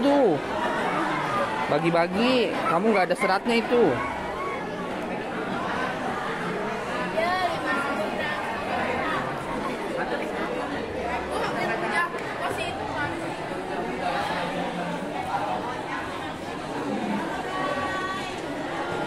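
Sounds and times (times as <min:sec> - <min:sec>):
students chattering: 0:00.0 - 0:19.0.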